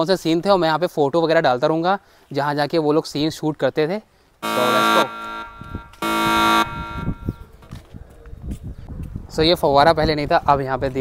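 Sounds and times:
loud electronic buzz: 0:04.4 - 0:07.4.

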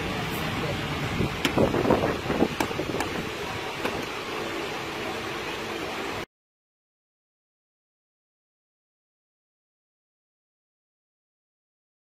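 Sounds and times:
steady background hum: 0:00.0 - 0:06.3.

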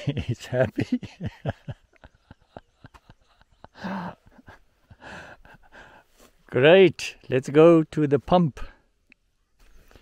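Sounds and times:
man chuckling: 0:00.0 - 0:05.8.

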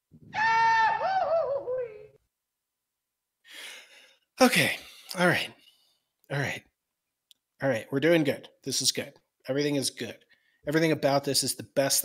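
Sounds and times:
man's high-pitched vocal wail: 0:00.4 - 0:02.2.

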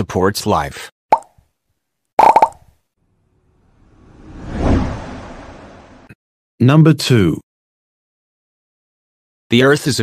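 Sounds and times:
cartoon pops: 0:02.2 - 0:02.6
whoosh: 0:03.4 - 0:06.2.

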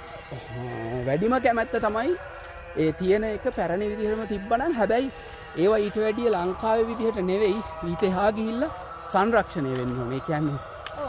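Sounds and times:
man talking: 0:00.3 - 0:02.2, 0:02.8 - 0:10.6.

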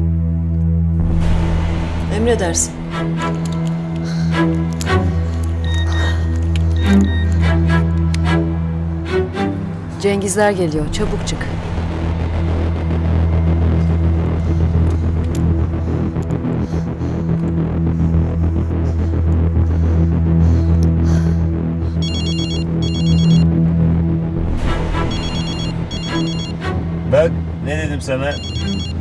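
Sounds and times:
low brooding music drone: 0:00.0 - 0:29.0
mobile phone ringing: 0:22.0 - 0:23.5, 0:25.1 - 0:26.6, 0:28.3 - 0:29.0.

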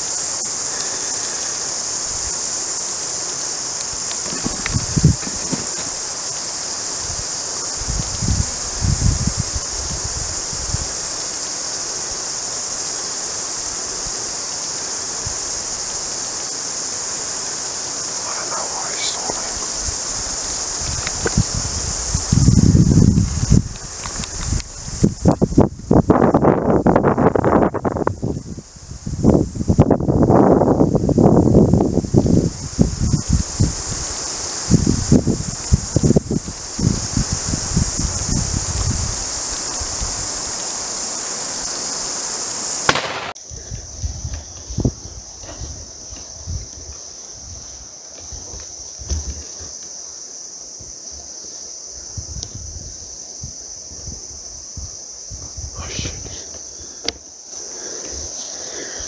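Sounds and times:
insect chorus: 0:00.0 - 0:59.0
camera handling through dry grass: 0:03.9 - 0:06.0
soft knocks: 0:04.2 - 0:06.0.

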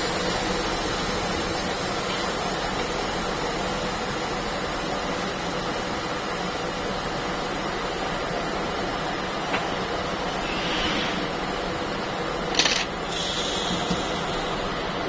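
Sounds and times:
hiss of escaping air: 0:10.2 - 0:11.8, 0:13.0 - 0:14.8.

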